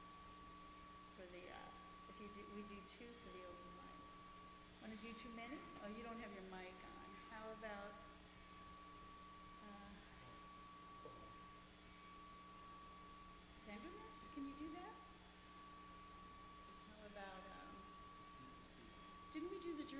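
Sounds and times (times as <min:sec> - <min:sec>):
faint steady hum: 0:00.0 - 0:19.9.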